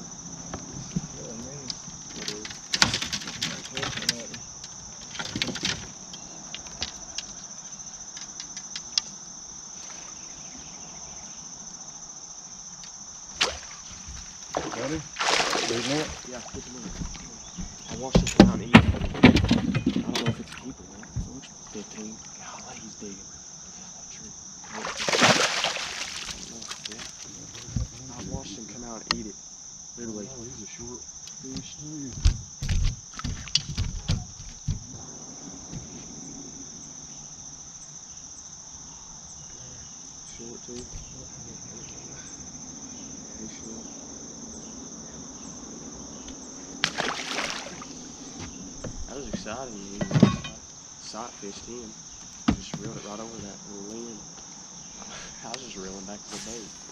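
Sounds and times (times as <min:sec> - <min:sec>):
insects chirring: 0:00.0 - 0:56.9
knocks and thumps on boat deck: 0:13.4 - 0:21.5, 0:26.3 - 0:28.5, 0:31.4 - 0:35.0, 0:46.8 - 0:50.6, 0:52.1 - 0:53.6.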